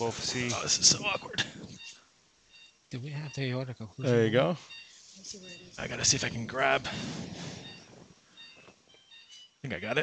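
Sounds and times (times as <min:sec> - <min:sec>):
faint electronic beeps: 0:00.0 - 0:10.0.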